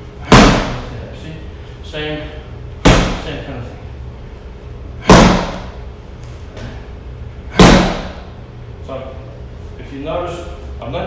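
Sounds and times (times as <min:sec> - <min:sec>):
punches hitting strike pad: 0:00.2 - 0:00.9, 0:02.8 - 0:03.4, 0:05.0 - 0:05.8, 0:07.5 - 0:08.3.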